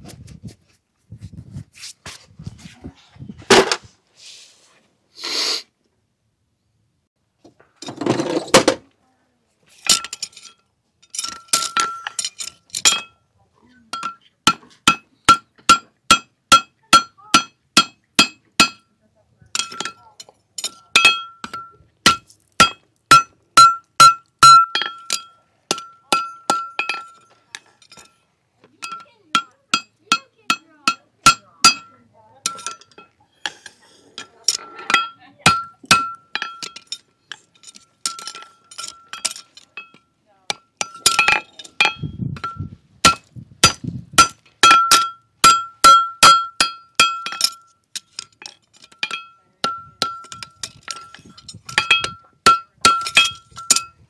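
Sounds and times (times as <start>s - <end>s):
hammer striking horseshoe on anvil: 11.2s - 13.2s, 13.9s - 18.9s, 19.6s - 28.1s, 28.8s - 33.6s, 34.2s - 37.0s, 37.7s - 54.0s.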